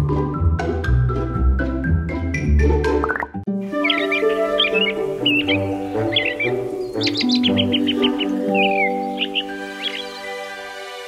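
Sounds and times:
background music with held notes: 0.0s - 11.0s
bird chirping and tweeting: 3.0s - 10.6s.

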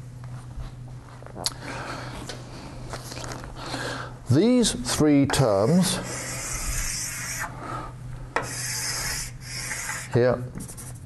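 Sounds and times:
low mains hum: 0.0s - 11.0s
pen scratching on surface: 6.0s - 7.5s, 8.4s - 11.0s.

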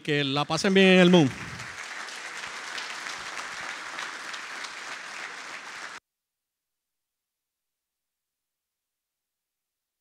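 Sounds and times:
audience applauding: 0.3s - 6.0s.

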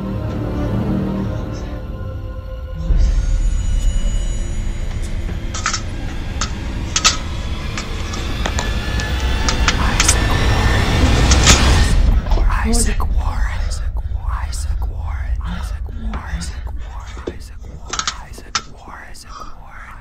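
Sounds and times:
loud low drone: 0.0s - 19.8s
soft whispering voices: 6.9s - 20.0s.

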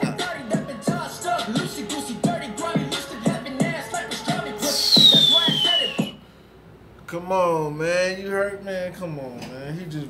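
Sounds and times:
hip hop track with rapping: 0.0s - 6.2s
high whistle-like tone sliding down: 4.6s - 6.2s.

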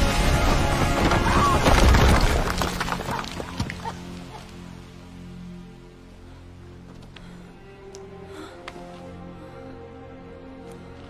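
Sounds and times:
crash: 0.0s - 3.4s
film score low sustained chord: 4.0s - 11.0s.

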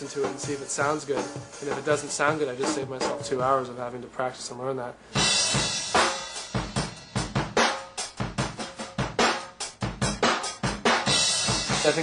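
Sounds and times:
rock drum kit playing: 0.0s - 3.8s, 5.1s - 12.0s.

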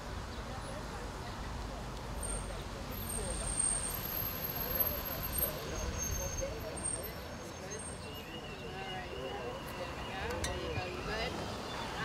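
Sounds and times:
faint murmuring voices: 4.4s - 12.0s.

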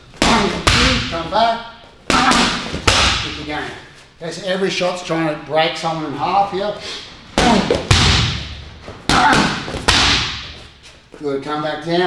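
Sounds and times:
punches hitting heavy bag: 0.2s - 1.2s, 2.1s - 3.4s, 7.4s - 10.6s.

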